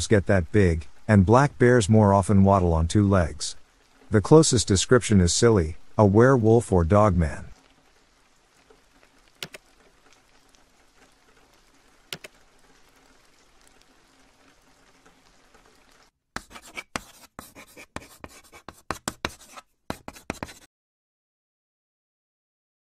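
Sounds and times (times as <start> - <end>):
faint steady rain: 0.0 - 16.2
scratching and clicking sound effects: 8.6 - 20.7
soft clicks: 9.4 - 9.7, 12.2 - 12.4.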